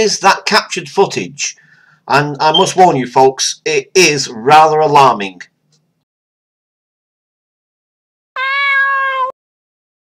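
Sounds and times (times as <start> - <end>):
cat meowing: 8.4 - 9.4.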